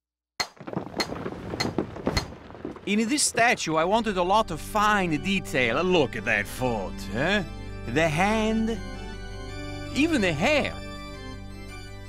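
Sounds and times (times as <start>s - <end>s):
falling stone chips: 0.5s - 4.2s.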